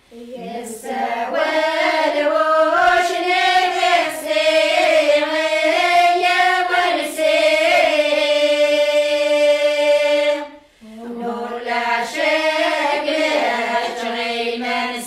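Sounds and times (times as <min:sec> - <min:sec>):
women singing unaccompanied: 0:00.1 - 0:15.0.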